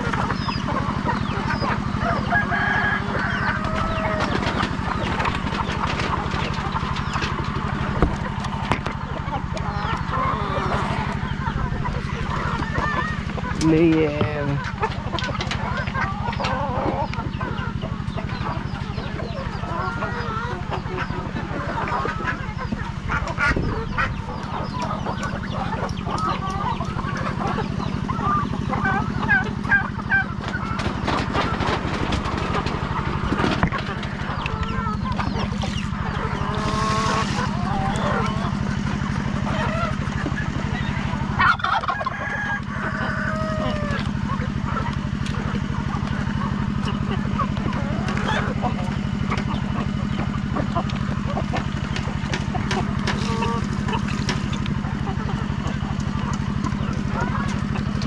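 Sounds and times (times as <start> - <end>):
chickens clucking: 0.0 - 58.0
low mechanical hum: 0.0 - 58.0.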